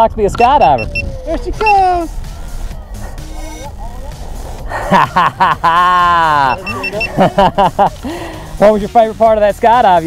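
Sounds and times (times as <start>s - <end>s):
short high electronic beeping: 6.4s - 7.2s.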